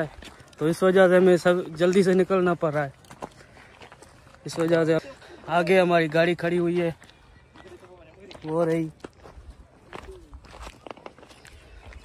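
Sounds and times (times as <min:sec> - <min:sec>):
footsteps on gravelly dirt: 0:00.0 - 0:12.0.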